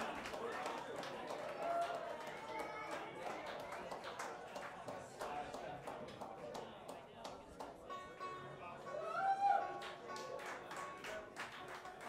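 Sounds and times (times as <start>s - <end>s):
audience clapping: 0.0s - 7.8s, 9.6s - 12.0s
crowd voices: 0.0s - 12.0s.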